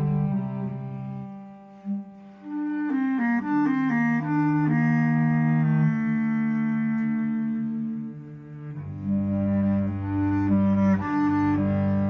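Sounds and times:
bass clarinet run: 0:00.0 - 0:12.0
held low cello note: 0:00.0 - 0:12.0.

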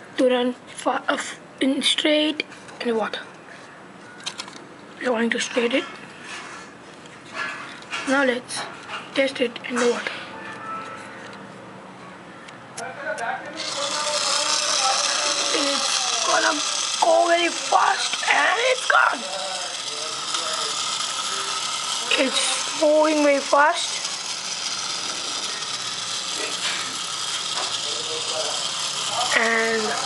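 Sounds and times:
small motor and propeller whirring: 0:13.6 - 0:30.0.

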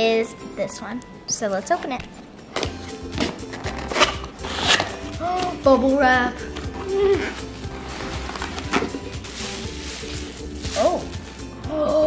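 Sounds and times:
background music: 0:00.0 - 0:12.0
cardboard box ripping: 0:03.7 - 0:05.1.

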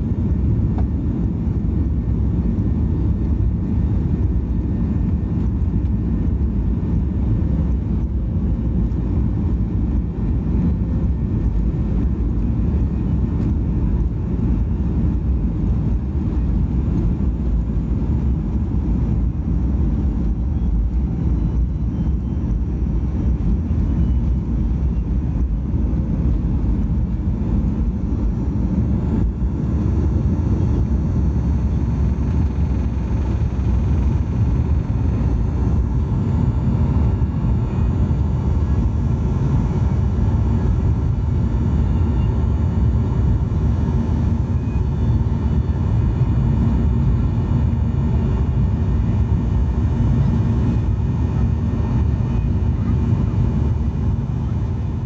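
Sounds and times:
jet engines roaring in cabin: 0:00.0 - 0:55.0.

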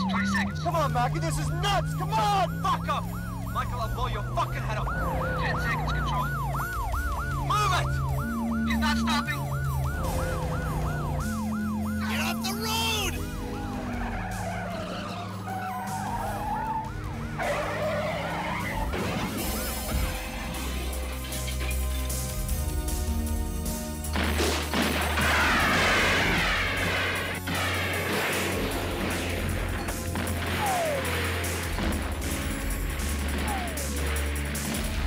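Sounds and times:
engine and road noise: 0:00.0 - 0:35.0
police siren wailing: 0:00.0 - 0:35.0.

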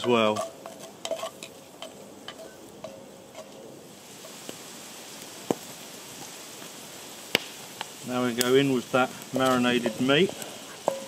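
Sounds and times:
onion sizzling in oil: 0:00.0 - 0:11.0.

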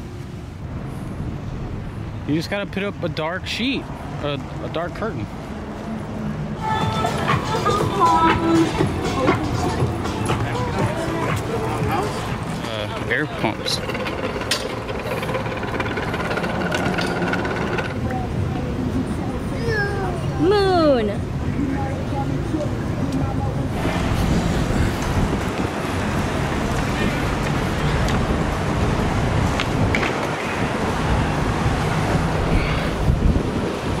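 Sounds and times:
air pumps droning: 0:06.8 - 0:18.1
wind buffeting microphone: 0:20.3 - 0:34.0.

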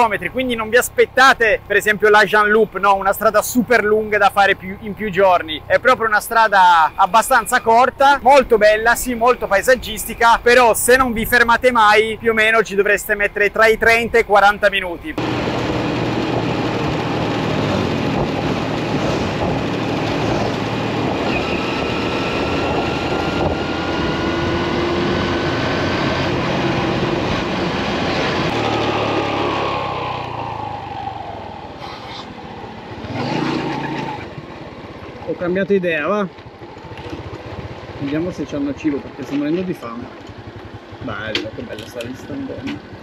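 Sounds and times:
scooter engine with whine: 0:15.2 - 0:43.0.

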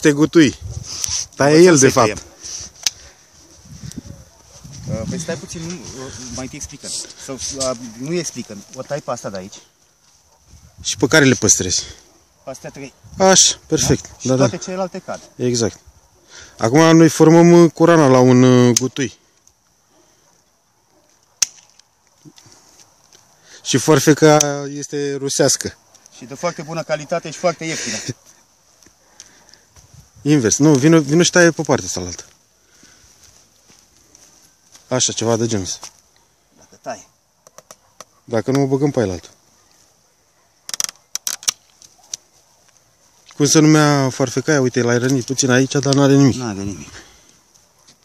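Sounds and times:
pruning shears snipping: 0:21.4 - 0:21.9.

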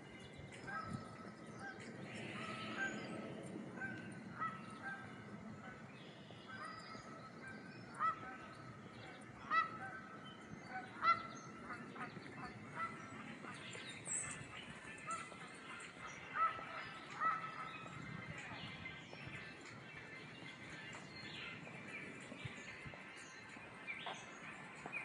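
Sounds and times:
birds honking calls: 0:00.5 - 0:25.0.

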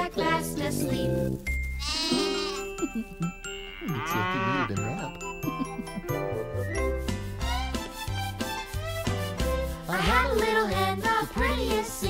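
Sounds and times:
light children's music: 0:00.0 - 0:12.0
cow mooing: 0:01.8 - 0:02.6, 0:03.8 - 0:04.8.

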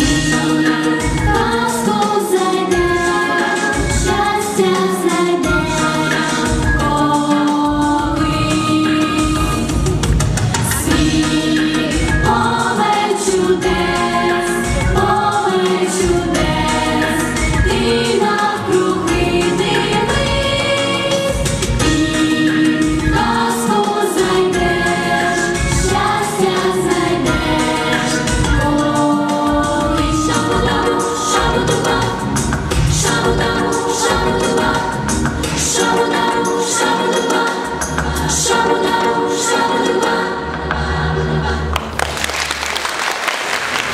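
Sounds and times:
children singing together: 0:00.0 - 0:09.8, 0:10.6 - 0:41.8
pop backing track with beat: 0:00.0 - 0:40.9.

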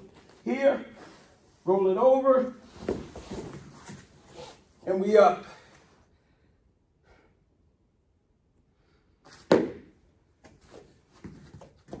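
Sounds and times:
soft thumps and scuffs on mats: 0:02.7 - 0:04.6, 0:09.3 - 0:12.0.

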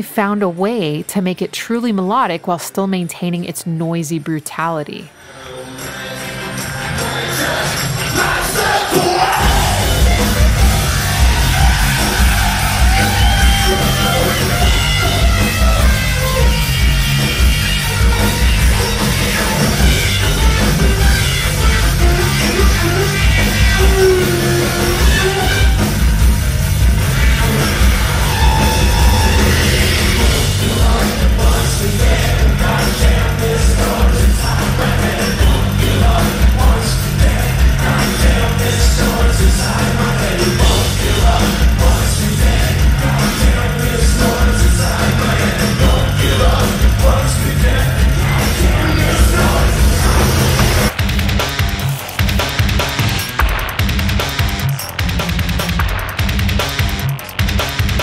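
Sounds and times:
bass: 0:05.6 - 0:58.0
drums: 0:05.8 - 0:58.0
synth lead: 0:09.4 - 0:33.6.

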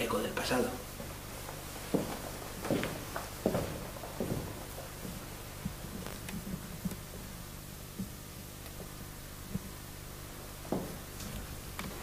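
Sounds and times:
steady low hum and hiss: 0:00.0 - 0:12.0
footsteps across room: 0:00.4 - 0:12.0.

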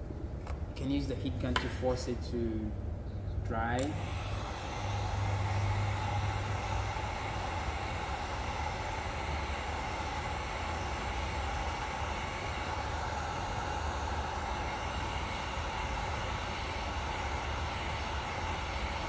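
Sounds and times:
heat gun fan whirring: 0:00.0 - 0:19.0.

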